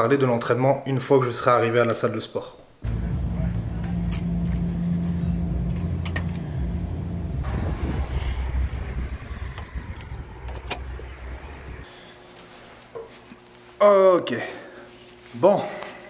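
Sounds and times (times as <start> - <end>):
low machine hum: 2.8 - 13.8.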